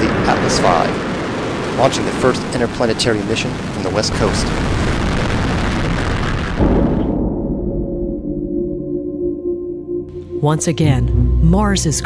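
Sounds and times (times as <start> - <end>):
rocket launch roar: 0.0 - 7.6
ambient music tones: 7.1 - 12.0.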